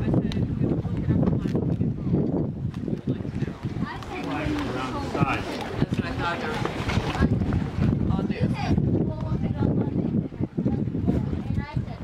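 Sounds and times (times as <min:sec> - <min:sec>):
voices: 0:00.0 - 0:12.0
wind buffeting microphone: 0:00.0 - 0:12.0.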